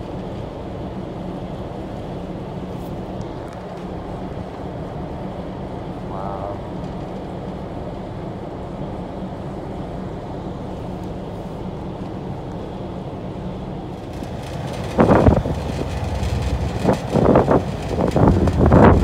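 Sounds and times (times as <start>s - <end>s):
boat engine rumble: 0.0s - 19.0s
wind on microphone: 14.2s - 19.0s.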